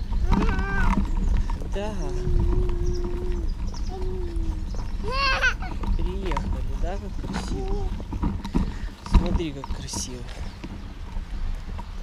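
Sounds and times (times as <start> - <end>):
stroller wheels rumbling on asphalt: 0.0 - 12.0
child's drawn-out voice: 0.2 - 1.1, 2.3 - 5.8.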